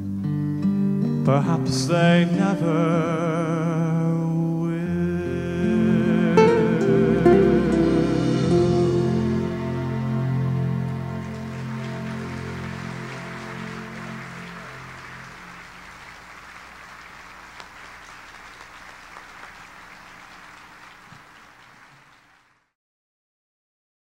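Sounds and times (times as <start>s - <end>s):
orchestra holding final chord: 6.1s - 18.6s
audience applause: 8.2s - 22.7s.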